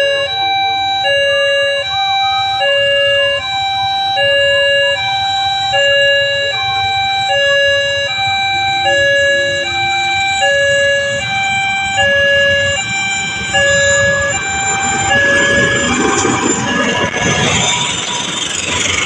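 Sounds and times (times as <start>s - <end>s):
diesel locomotive rumble: 0.0s - 19.0s
level-crossing two-tone alarm: 0.0s - 19.0s.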